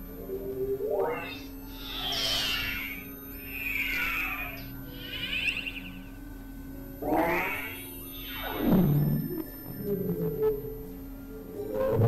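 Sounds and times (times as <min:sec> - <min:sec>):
steady low drone: 0:00.0 - 0:12.0
synthesizer pitch glides: 0:00.0 - 0:12.0.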